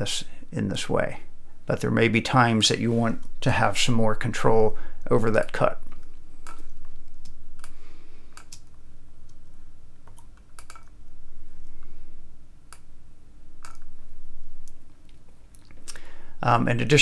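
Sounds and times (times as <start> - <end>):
steady low hum: 0.0 - 17.0
computer mouse clicking: 8.4 - 9.4, 10.0 - 11.0, 13.6 - 13.9.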